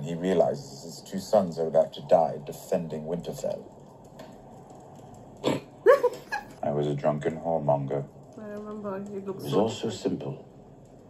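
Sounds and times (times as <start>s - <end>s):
woman laughing: 5.8s - 6.6s.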